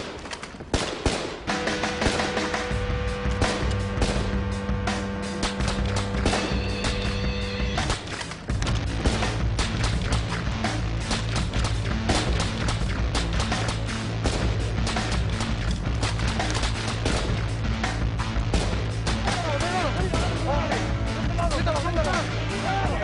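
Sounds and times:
rapid gunshots: 0:00.0 - 0:02.6, 0:05.3 - 0:07.1, 0:07.8 - 0:17.6, 0:18.5 - 0:20.4
dramatic music with low beat: 0:00.9 - 0:23.0.

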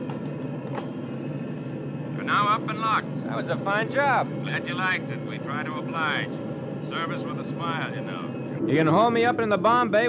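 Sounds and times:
aircraft engines droning: 0:00.0 - 0:10.0.

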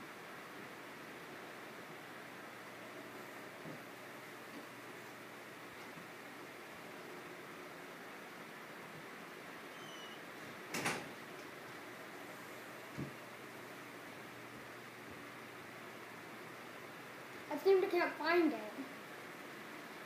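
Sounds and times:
electric fan hiss: 0:00.0 - 0:20.0.

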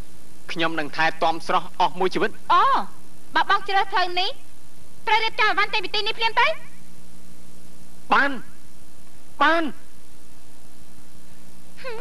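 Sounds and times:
film soundtrack hum and hiss: 0:00.0 - 0:12.0.

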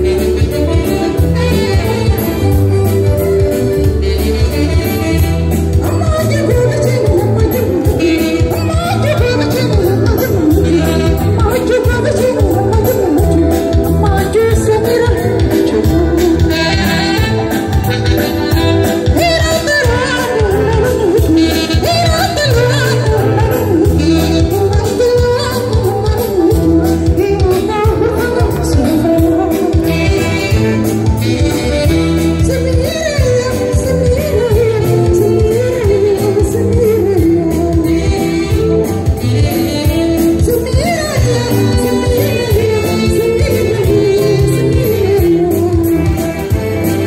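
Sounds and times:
live band playing dance music: 0:00.0 - 0:47.0
person singing lead vocal: 0:00.0 - 0:47.0.

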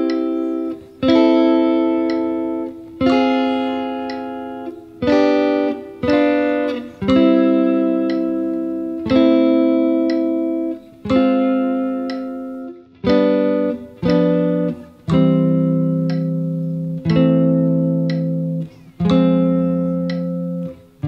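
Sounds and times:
clean electric guitar chords: 0:00.0 - 0:21.0.

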